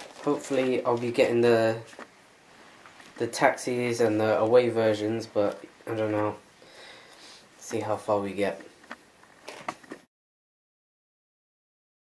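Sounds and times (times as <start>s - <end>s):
sneaker handling clicks and rustles: 0.0s - 2.1s, 8.7s - 10.1s.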